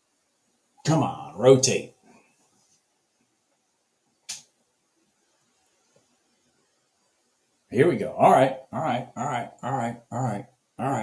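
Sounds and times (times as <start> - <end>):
sharp click: 4.3 - 4.5.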